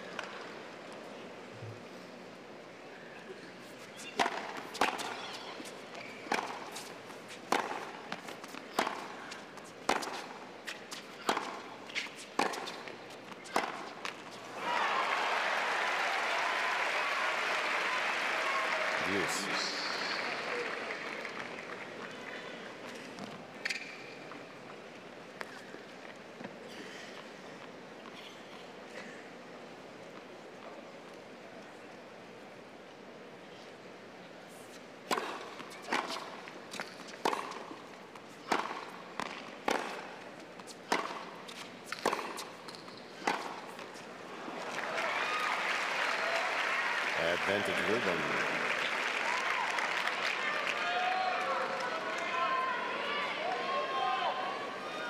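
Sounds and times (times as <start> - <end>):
racket hitting tennis ball: 4.1 - 5.3, 6.2 - 14.4, 35.0 - 37.8, 38.4 - 43.9
crowd applause and cheering: 14.5 - 22.3, 44.4 - 54.1.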